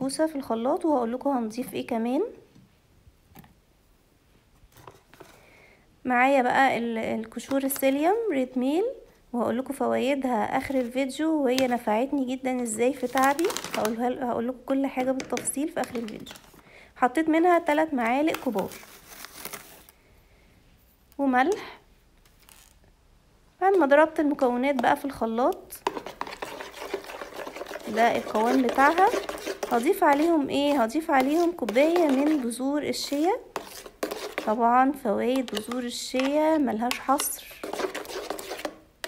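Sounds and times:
spoon rustling at blender jar: 23.8s - 38.9s.

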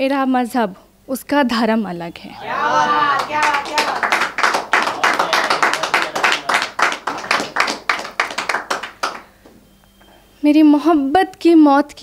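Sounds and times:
audience clapping: 2.4s - 9.4s.

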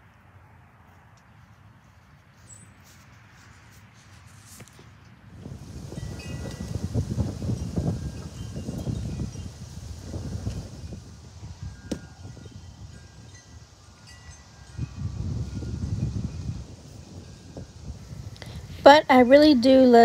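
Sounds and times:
wind buffeting microphone: 5.3s - 20.0s
metal wind chimes ringing: 5.8s - 20.0s.

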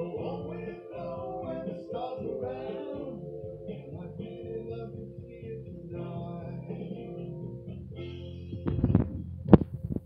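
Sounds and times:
karaoke backing track chord: 0.0s - 9.6s
microphone handling bumps: 8.6s - 10.0s
microphone thump: 8.7s - 10.0s.

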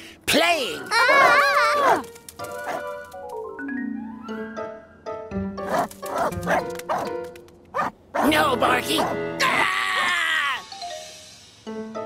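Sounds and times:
light background music: 0.0s - 12.0s
cartoon dog barking: 1.0s - 2.0s, 7.8s - 9.6s.

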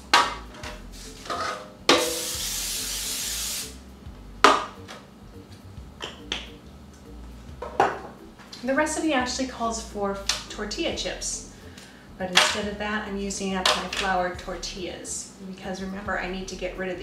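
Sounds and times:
aerosol spray hissing: 2.0s - 3.8s.

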